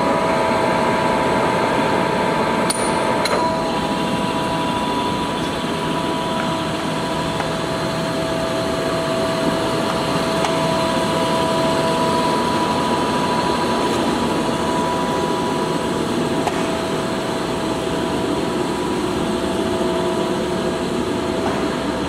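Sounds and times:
lathe mechanical drone: 0:00.0 - 0:22.0.

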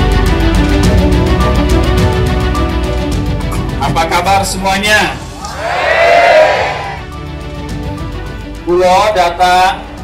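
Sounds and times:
background music: 0:00.0 - 0:10.0
crowd calling back together: 0:05.4 - 0:07.1.

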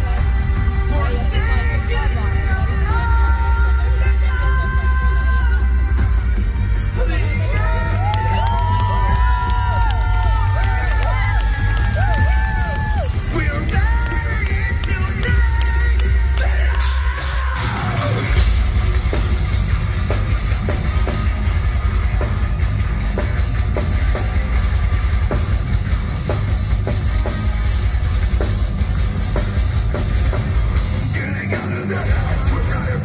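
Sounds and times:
singer's voice: 0:00.0 - 0:18.8, 0:30.8 - 0:33.0
low bass drone: 0:00.0 - 0:33.0
rock band drums and guitars: 0:00.0 - 0:33.0
crowd cheering: 0:07.0 - 0:33.0.

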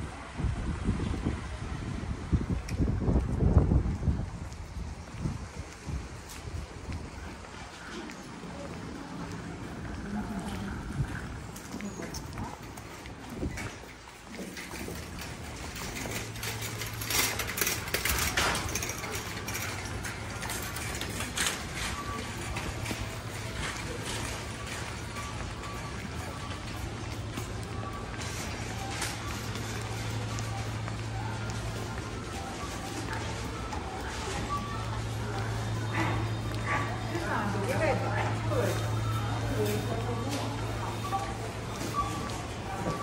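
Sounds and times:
shoppers' voices: 0:01.4 - 0:43.0
in-store music: 0:14.8 - 0:43.0.

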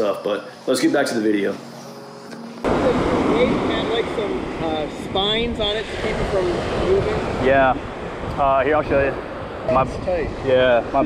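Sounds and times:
man talking: 0:00.0 - 0:01.6, 0:07.4 - 0:11.0
surf on beach: 0:02.6 - 0:11.0
wind on microphone: 0:02.6 - 0:11.0.

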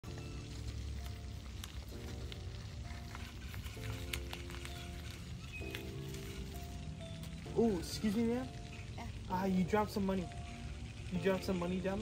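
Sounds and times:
background music of held chords: 0:00.0 - 0:12.0.

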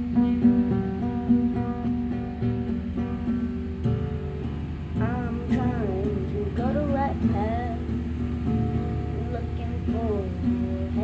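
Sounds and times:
acoustic guitar picking chords: 0:00.0 - 0:11.0.

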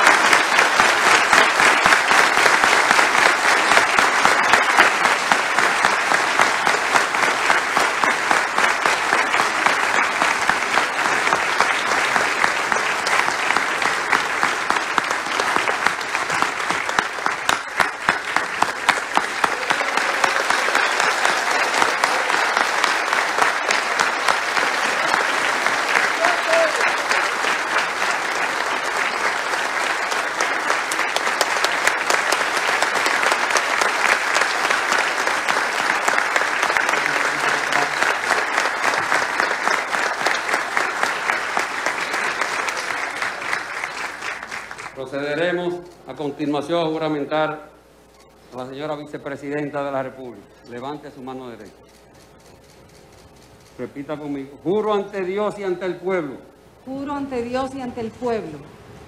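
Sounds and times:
audience applauding: 0:00.0 - 0:47.2.

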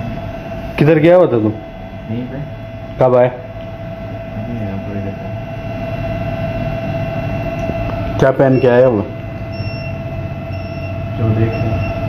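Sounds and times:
electrical hum with whine: 0:00.0 - 0:12.0.

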